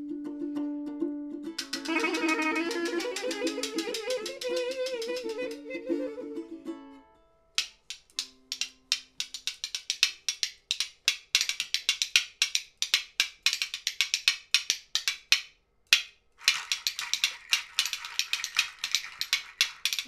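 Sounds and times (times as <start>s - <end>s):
scraper rasping on ribbed metal: 1.6s - 5.5s.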